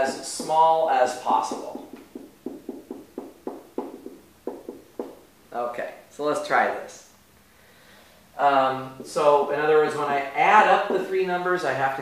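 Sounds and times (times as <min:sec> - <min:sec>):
marker writing on a whiteboard: 0:00.0 - 0:05.2, 0:08.9 - 0:10.0, 0:10.6 - 0:11.2.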